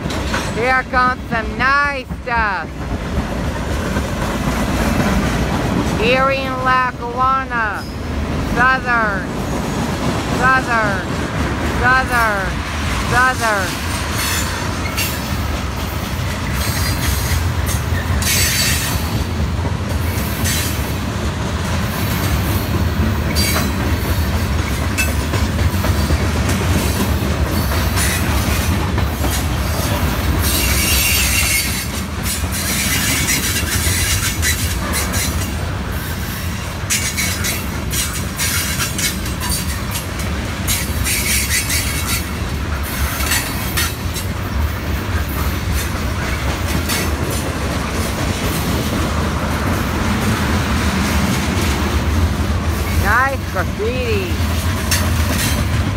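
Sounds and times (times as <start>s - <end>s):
freight train rumbling on rails: 0.0s - 55.9s.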